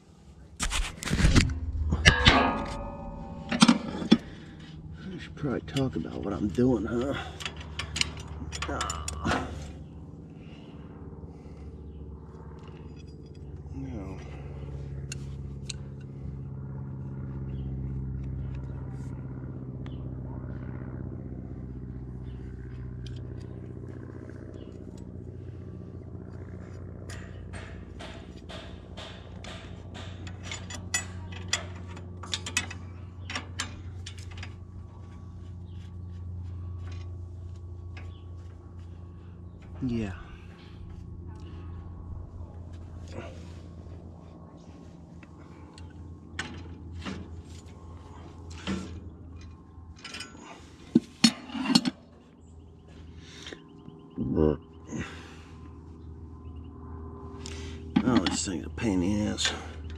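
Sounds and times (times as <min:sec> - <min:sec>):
engine idling: 0:01.4 - 0:59.9.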